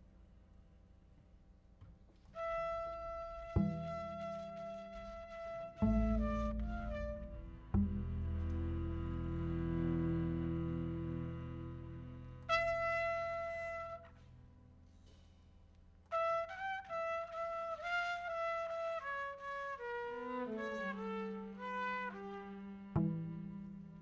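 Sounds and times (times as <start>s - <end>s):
bowed and plucked low strings: 5.8s - 12.6s, 22.8s - 24.0s.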